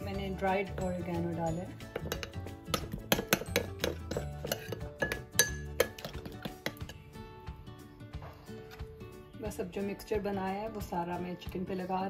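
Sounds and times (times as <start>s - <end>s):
background music: 0.0s - 12.0s
metal utensil clinking on glass bowl: 0.8s - 7.0s.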